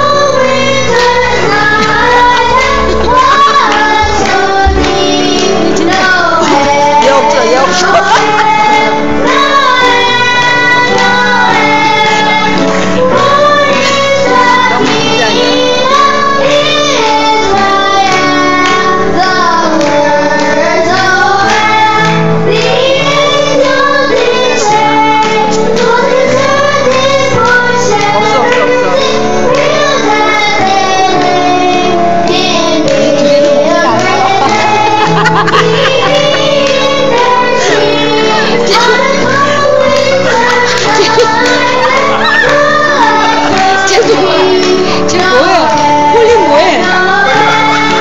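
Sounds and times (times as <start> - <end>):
children singing into microphones: 0.0 - 48.0.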